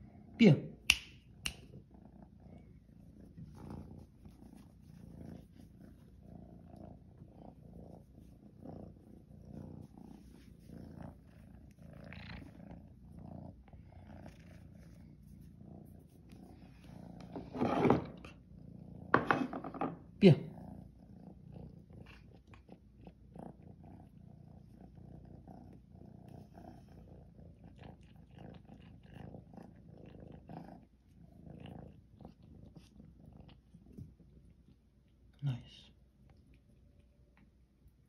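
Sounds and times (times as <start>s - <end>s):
cat purring: 0.0s - 0.4s, 1.2s - 38.0s.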